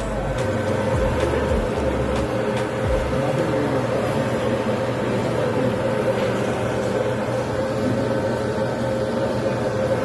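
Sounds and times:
motor humming: 0.0s - 8.8s.

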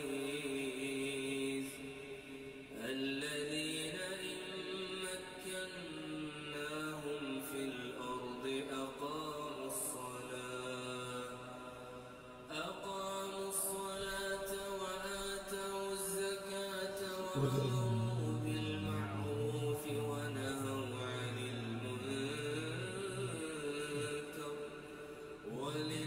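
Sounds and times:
man chanting melodically: 0.0s - 1.8s, 12.5s - 26.0s.

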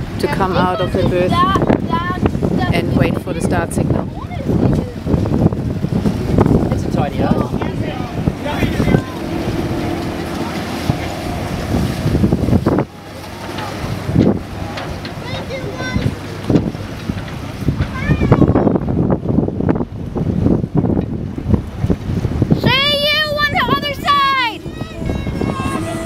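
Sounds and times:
boat motor rumble: 0.0s - 26.0s
wind buffeting microphone: 0.0s - 26.0s
steady engine hum: 4.0s - 18.2s, 22.6s - 26.0s
people's voices: 6.7s - 11.6s, 13.0s - 16.5s, 22.6s - 26.0s.

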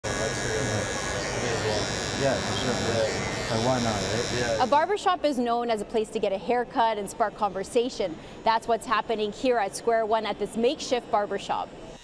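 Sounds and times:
electric hair clippers running: 0.0s - 4.9s
voices talking: 0.1s - 5.0s.

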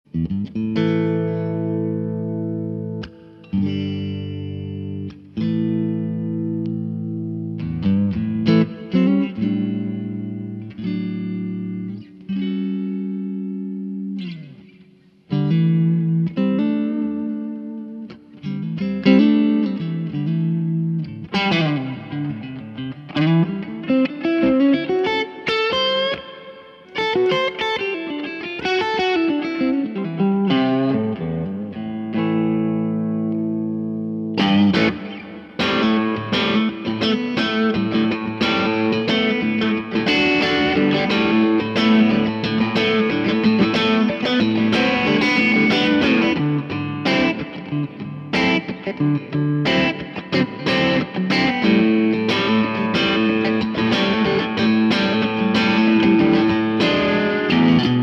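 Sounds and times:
amplified electric guitar: 0.0s - 58.0s.

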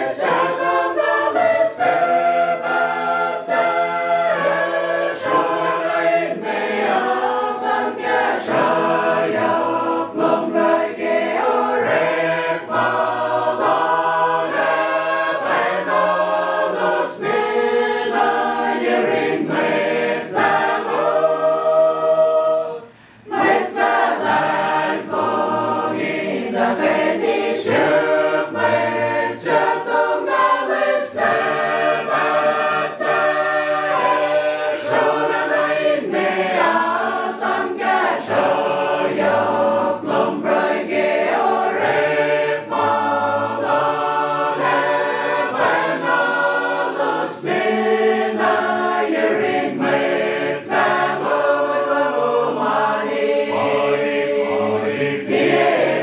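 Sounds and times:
gospel choir singing unaccompanied: 0.0s - 56.0s.

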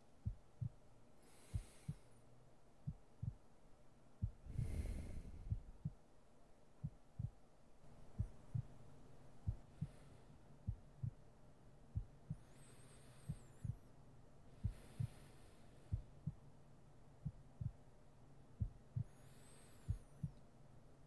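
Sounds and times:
slow heartbeat: 0.1s - 2.1s, 2.8s - 3.5s, 4.2s - 6.1s, 6.8s - 11.3s, 11.9s - 16.5s, 17.2s - 17.9s, 18.5s - 20.4s
faint hiss: 0.9s - 2.8s, 4.2s - 6.8s, 12.2s - 17.1s, 19.0s - 21.0s
soft breath-like rush: 1.1s - 2.3s, 4.2s - 6.0s, 9.4s - 11.2s, 12.0s - 16.5s, 18.8s - 20.4s.

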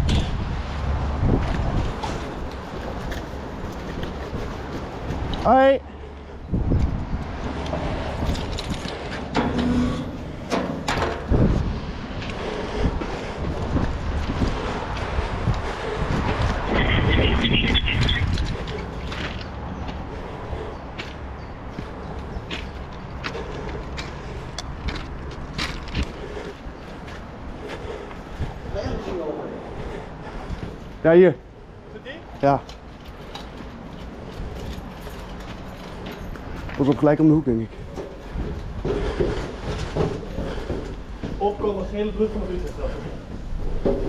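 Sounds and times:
wind rumbling on microphone: 0.0s - 32.0s
footsteps crunching on ballast: 11.3s - 28.5s.

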